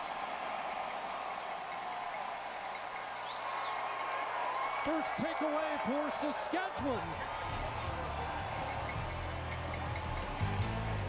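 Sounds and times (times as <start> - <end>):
music with low bass line: 7.4 - 11.0.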